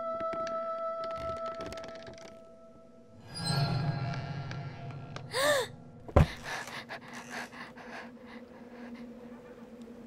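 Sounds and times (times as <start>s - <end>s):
girl gasping: 5.3s - 8.4s.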